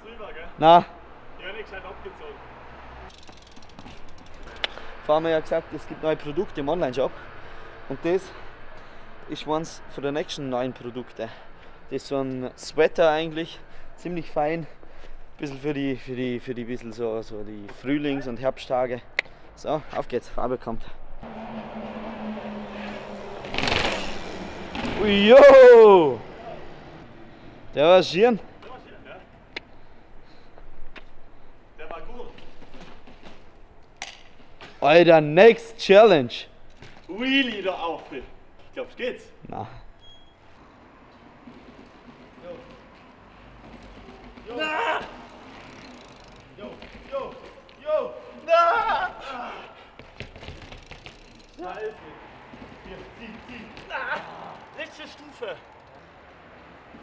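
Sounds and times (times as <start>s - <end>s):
bike rolling on concrete: 1.0s - 7.0s, 21.2s - 49.0s, 49.8s - 57.0s
bike clicks and knocks: 3.1s - 4.8s, 23.4s - 25.1s, 31.9s - 34.8s, 36.6s - 37.7s, 41.1s - 47.8s, 50.0s - 56.2s
bike rasping burst: 21.2s - 27.0s, 43.9s - 46.7s, 49.8s - 51.9s, 54.1s - 56.0s.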